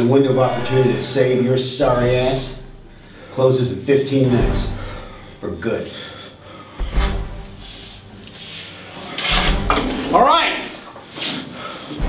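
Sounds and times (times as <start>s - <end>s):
chair scraping across hard floor: 7.6s - 11.5s.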